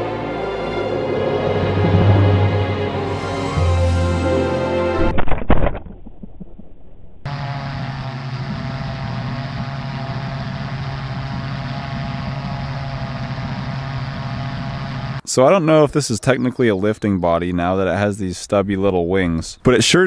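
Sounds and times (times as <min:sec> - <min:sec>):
background music: 0:00.0 - 0:05.1
low motor hum: 0:00.0 - 0:15.2.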